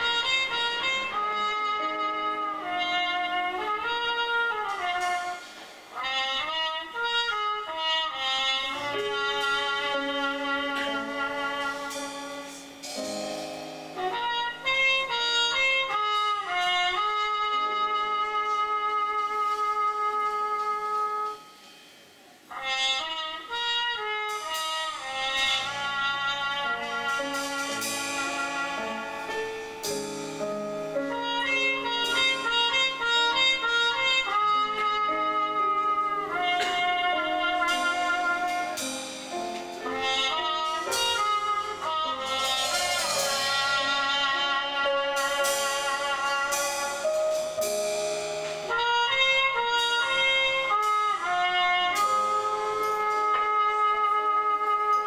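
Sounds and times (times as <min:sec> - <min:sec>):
live jazz band playing: 0:00.0 - 0:55.0
trumpet melody: 0:00.0 - 0:55.0.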